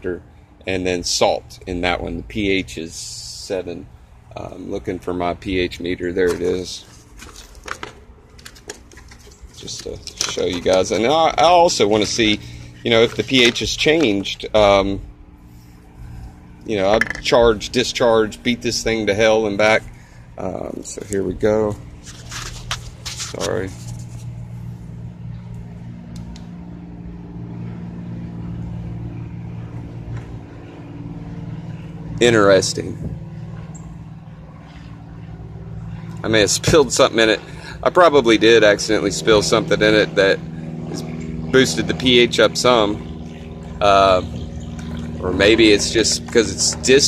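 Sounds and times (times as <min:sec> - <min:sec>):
machine droning: 0:00.0 - 0:47.0.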